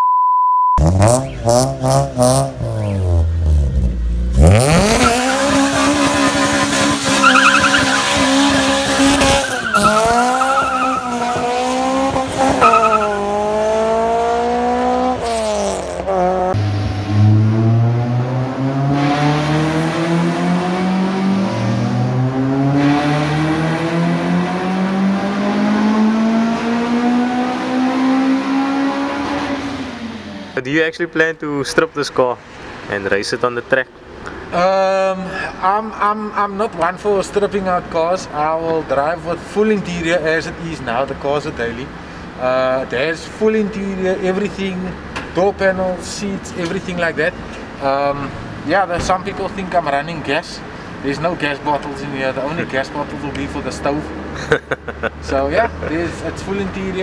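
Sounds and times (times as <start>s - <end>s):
test-tone beep: 0.0s - 1.4s
car engine revving: 0.8s - 30.6s
tyre squeal: 4.9s - 11.4s, 12.6s - 13.3s.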